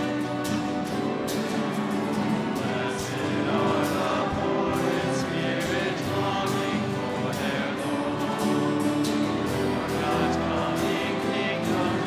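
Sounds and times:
choir and congregation singing: 0.0s - 12.0s.

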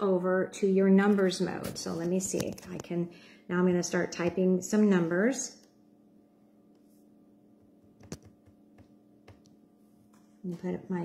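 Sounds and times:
laptop keyboard clicks: 8.0s - 9.5s.

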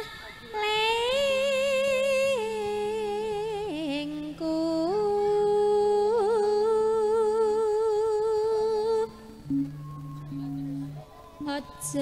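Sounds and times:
soft low accompaniment notes: 3.6s - 12.0s.

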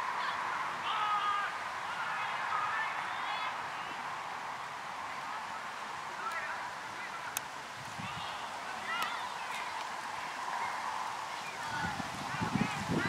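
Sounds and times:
distant players shouting: 0.0s - 13.0s
outdoor background noise: 0.0s - 13.0s.

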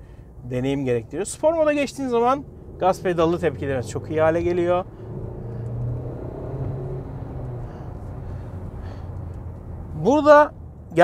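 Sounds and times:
car engine drone from cabin: 0.0s - 11.0s.

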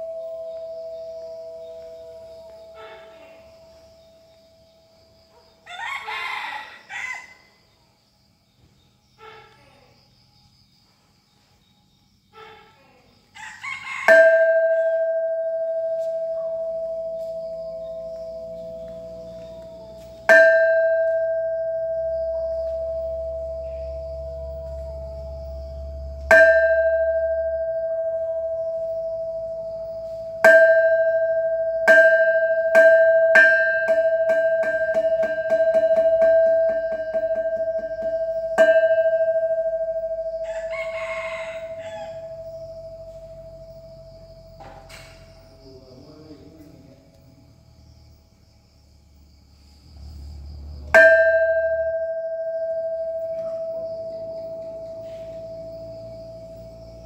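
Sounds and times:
metal temple bell ringing: 14.1s - 40.7s, 51.0s - 57.0s.

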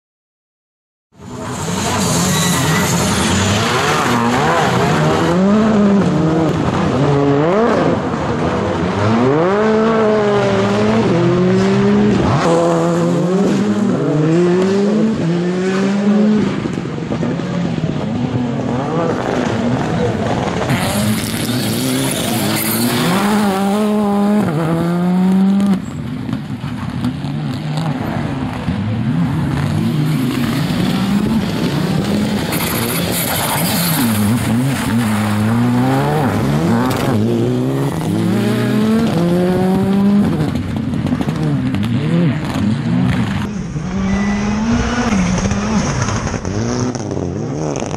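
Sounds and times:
rally car engines revving: 1.2s - 47.9s.

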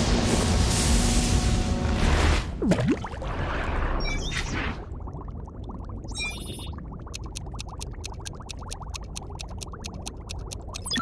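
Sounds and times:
water bubbling: 2.6s - 3.5s, 4.7s - 11.0s
rapid even ticking: 7.0s - 11.0s.

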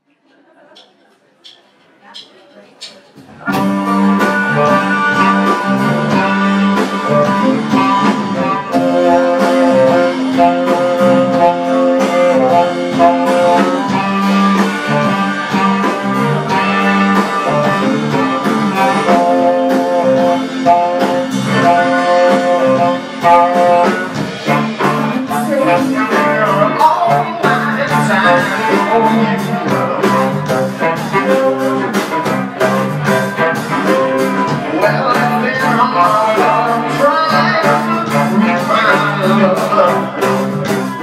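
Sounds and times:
live band instrumental music: 0.4s - 41.0s
steady drum beat: 0.7s - 41.0s.

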